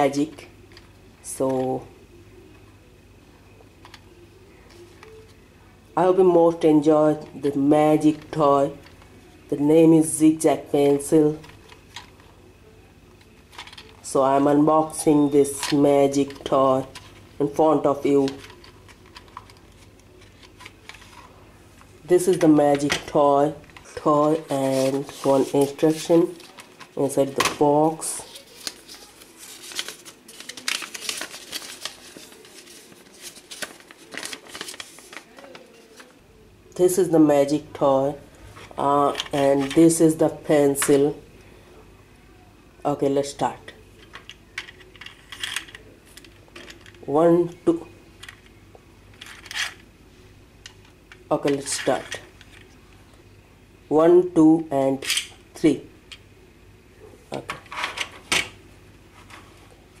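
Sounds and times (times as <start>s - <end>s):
paper crinkling and rustling: 18.2s - 21.4s, 23.7s - 27.0s, 27.9s - 36.2s.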